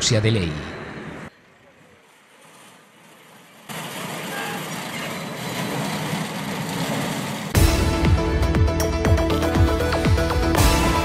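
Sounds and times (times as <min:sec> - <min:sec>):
vehicles outdoors: 0:00.0 - 0:11.0.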